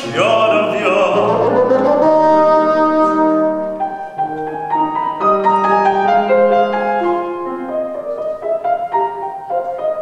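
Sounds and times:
bassoon: 0.0 - 10.0
piano chords: 0.0 - 10.0.

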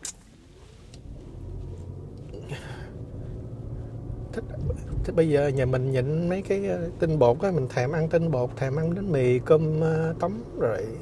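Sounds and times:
car accelerating: 0.6 - 11.0.

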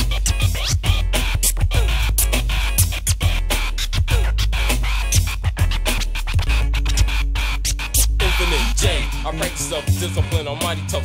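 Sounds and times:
drum machine beat with heavy bass: 0.0 - 11.0
turntable scratching: 0.0 - 11.0.

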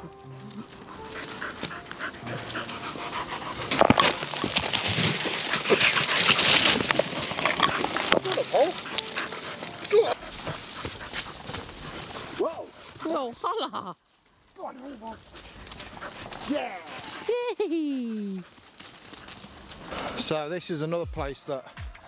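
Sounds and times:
dogs panting: 0.0 - 13.4, 14.6 - 20.4
loud rustling: 0.6 - 12.9.

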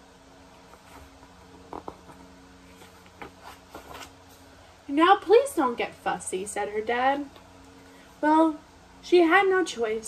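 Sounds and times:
faint steady hum: 0.0 - 10.0
paper rustles and taps: 0.7 - 4.1
page being turned: 0.7 - 4.2.

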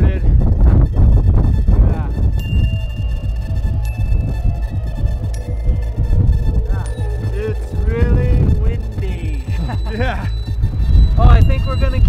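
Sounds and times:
wind buffeting microphone: 0.0 - 12.0
background music with high notes: 0.4 - 12.0.

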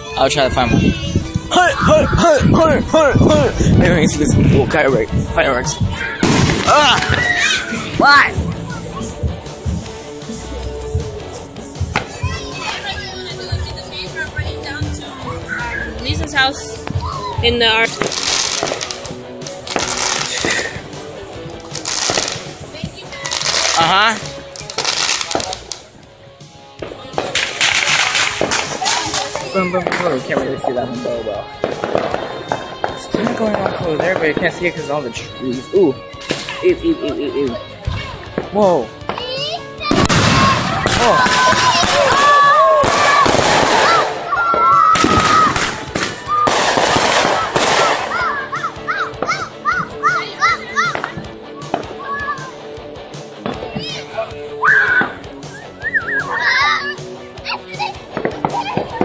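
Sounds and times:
children calling out: 0.0 - 2.6, 5.8 - 9.3, 12.0 - 13.4, 15.2 - 16.1, 16.9 - 18.6, 39.2 - 52.7, 53.6 - 59.0
background music: 0.0 - 59.0
fireworks bangs and crackling: 0.4 - 25.9, 26.8 - 34.9, 36.2 - 37.2, 37.8 - 49.6, 50.8 - 52.0, 53.4 - 54.1, 57.7 - 59.0.

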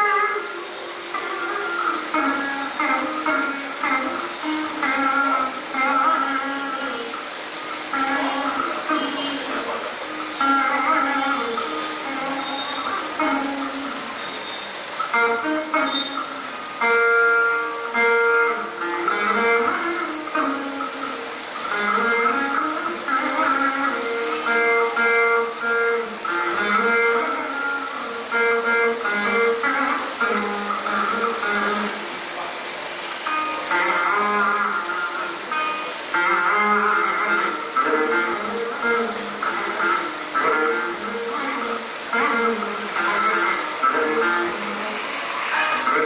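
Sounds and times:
plucked veena with gliding notes: 0.0 - 46.0.

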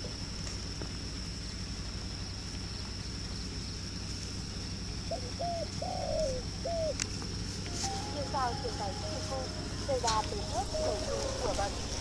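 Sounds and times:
dove cooing: 5.0 - 7.0, 7.6 - 12.0.

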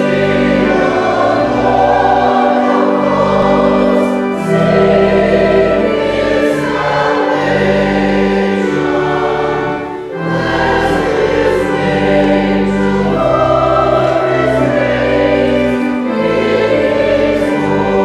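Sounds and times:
choir singing with accompaniment: 0.0 - 18.0.

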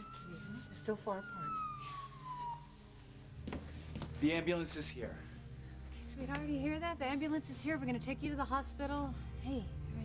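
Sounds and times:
ambulance siren wailing: 0.0 - 3.1.

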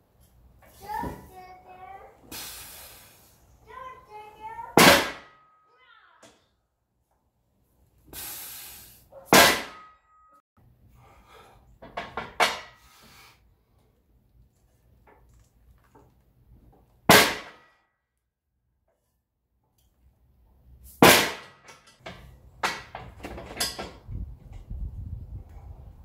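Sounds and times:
metal clang with ringing tone: 9.6 - 10.4.

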